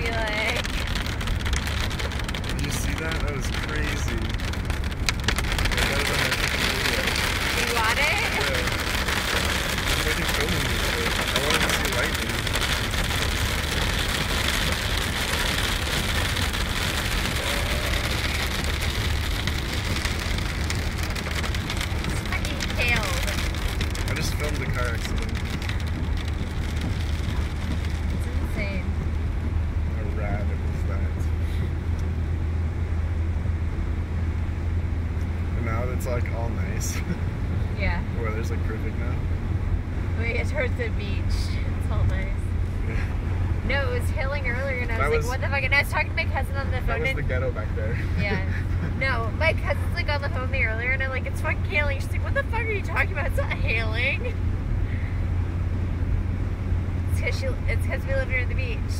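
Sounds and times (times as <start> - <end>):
tyres hissing on wet road: 0.0 - 31.8, 39.9 - 58.9
low engine and road drone: 0.0 - 58.9
rain on a moving car: 0.0 - 58.9.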